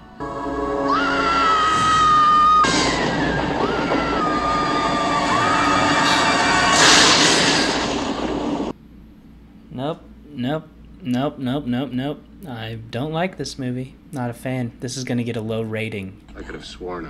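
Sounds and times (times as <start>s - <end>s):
music: 0.0s - 2.7s
woman screaming: 0.8s - 6.9s.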